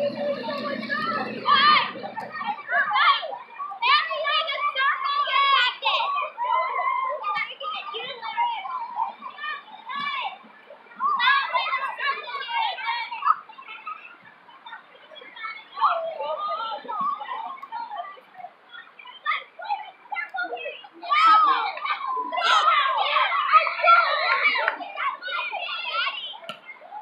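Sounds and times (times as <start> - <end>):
children chattering and calling out: 0.0 - 27.0.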